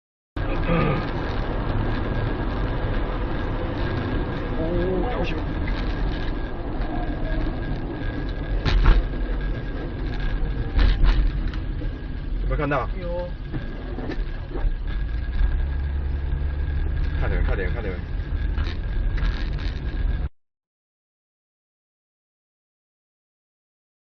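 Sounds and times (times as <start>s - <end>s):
car road and engine noise: 0.4s - 20.3s
faint steady whine: 0.4s - 20.3s.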